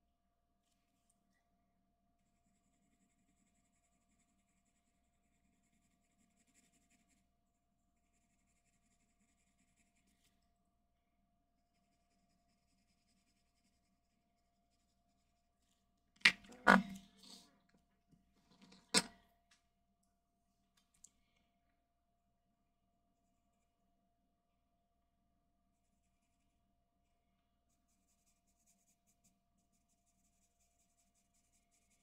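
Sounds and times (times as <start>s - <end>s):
pencil shading paper: 2.2s - 10.4s, 11.6s - 15.6s, 25.7s - 26.6s, 27.7s - 32.0s.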